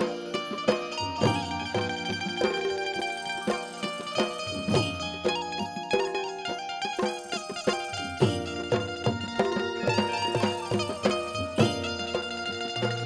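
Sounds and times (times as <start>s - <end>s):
drum strokes: 0.0s - 13.0s
plucked string melody: 0.0s - 13.0s
struck metal percussion: 0.0s - 13.0s.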